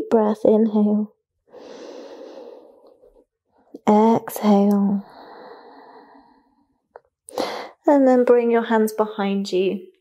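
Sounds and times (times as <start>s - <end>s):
woman breathing in deeply: 1.5s - 3.2s, 5.0s - 7.8s.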